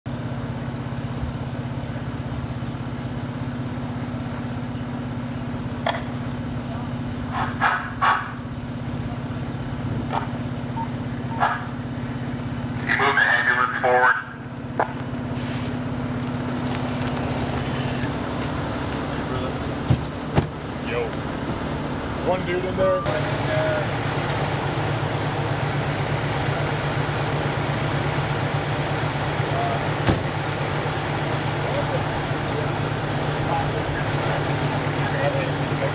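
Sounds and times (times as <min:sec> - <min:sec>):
vehicle engine idling: 0:00.1 - 0:35.9
bursts of voices: 0:12.8 - 0:14.5.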